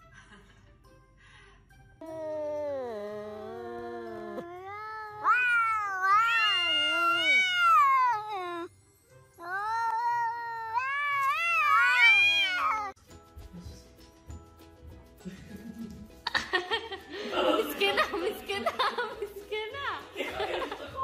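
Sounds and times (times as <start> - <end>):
cat yowling: 2.0 - 8.7, 9.4 - 13.0.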